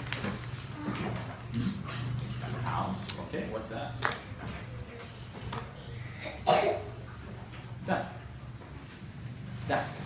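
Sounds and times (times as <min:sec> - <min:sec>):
girl's quiet voice: 0:04.7 - 0:07.7.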